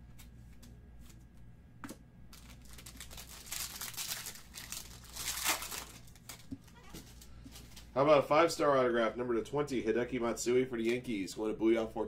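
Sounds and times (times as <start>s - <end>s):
plastic wrapping crinkling: 2.3s - 7.9s.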